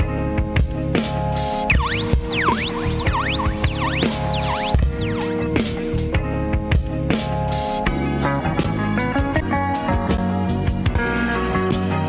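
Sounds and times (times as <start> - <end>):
sampler loop with pitch dips: 1.7 - 6.1.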